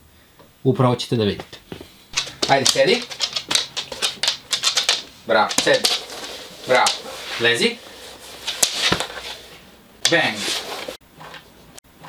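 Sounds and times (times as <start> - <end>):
dog claws clicking on wooden floor: 2.2 - 7.1.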